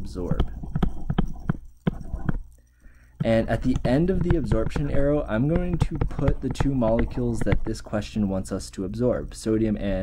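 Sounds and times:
stylus tapping on tablet screen: 0.2 - 2.5, 3.2 - 7.8.

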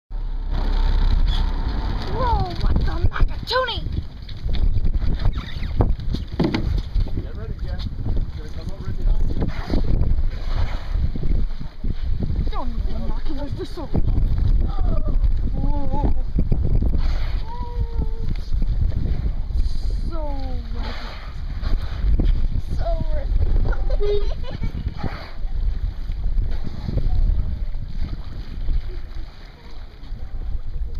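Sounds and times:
boat moving through choppy sea: 0.1 - 30.9
wind buffeting microphone: 0.5 - 30.9.

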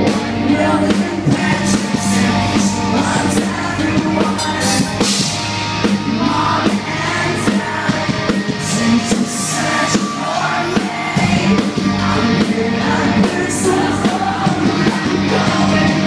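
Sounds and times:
drum and cymbal hits: 0.0 - 16.0
rock band playing live: 0.0 - 16.0.

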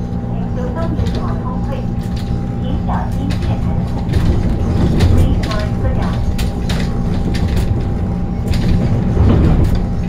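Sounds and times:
train motor whine: 0.0 - 10.0
train wheels rumbling: 0.0 - 10.0
sharp clicks and rattles: 0.6 - 10.0.

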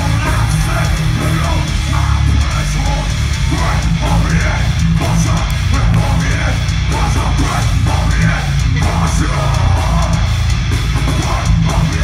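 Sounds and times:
bass guitar: 0.0 - 12.0
distorted electric guitars: 0.0 - 12.0
drums: 0.0 - 12.0.

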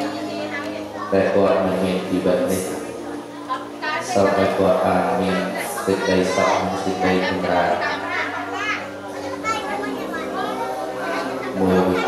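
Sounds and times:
children's voices: 0.0 - 12.0
people talking: 0.0 - 12.0.

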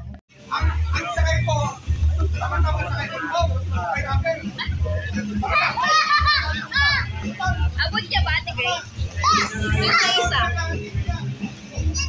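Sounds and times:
children shouting and squealing: 5.4 - 7.3, 9.0 - 10.4.

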